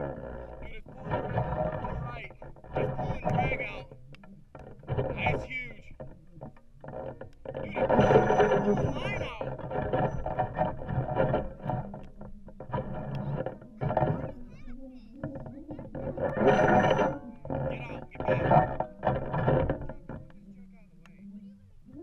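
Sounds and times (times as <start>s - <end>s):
people talking and exclaiming: 8.6s - 9.6s, 13.2s - 16.5s.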